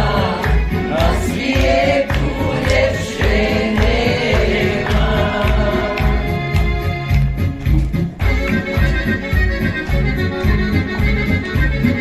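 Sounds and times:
voices singing along: 0.0 - 6.4.

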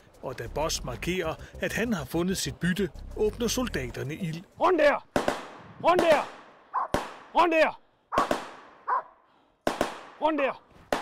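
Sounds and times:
gunshots with echo: 5.1 - 7.5, 8.1 - 9.0, 9.6 - 11.0.

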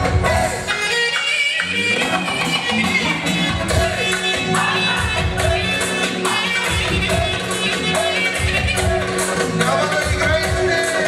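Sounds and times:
live band playing dance music: 0.0 - 11.0
steady drum beat: 1.9 - 11.0.

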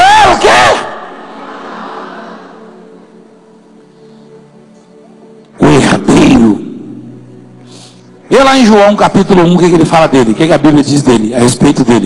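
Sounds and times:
man shouting: 0.0 - 1.1.

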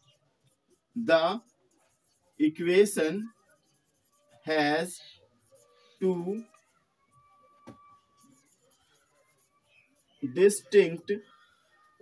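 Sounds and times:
marker pen scratching on whiteboard: 0.0 - 12.0.

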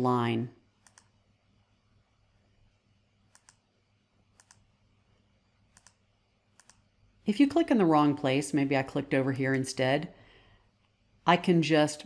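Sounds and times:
faint room hiss: 0.0 - 12.0
computer mouse button clicking: 0.8 - 1.1, 3.3 - 3.6, 5.8 - 6.0.

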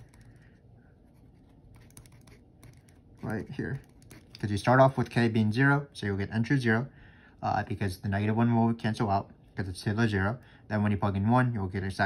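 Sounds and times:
pen scratching on paper: 1.1 - 4.4
light pen ticks: 1.7 - 4.5.

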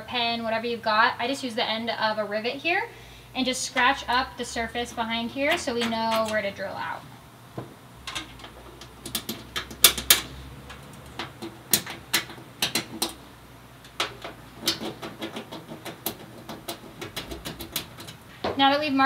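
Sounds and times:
rivet scratching and tapping on steel: 5.5 - 6.5, 8.1 - 18.3.

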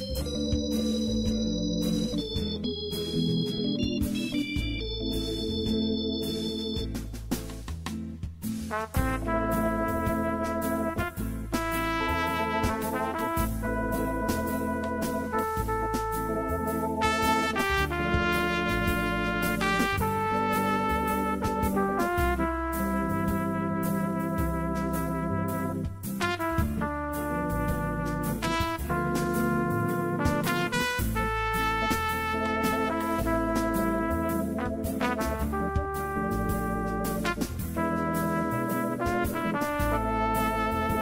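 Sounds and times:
jazz tune on electronic keyboard: 0.0 - 41.0.

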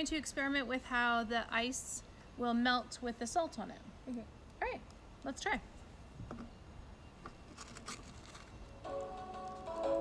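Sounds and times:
background music with held notes: 8.8 - 10.0.

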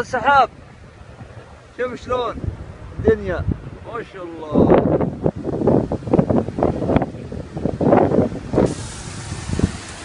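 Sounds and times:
wind gusts buffeting microphone: 0.0 - 10.0
steady hiss: 8.6 - 10.0.

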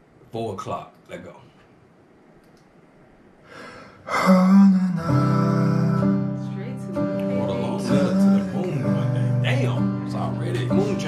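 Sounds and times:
soft breath hiss: 0.0 - 5.7.

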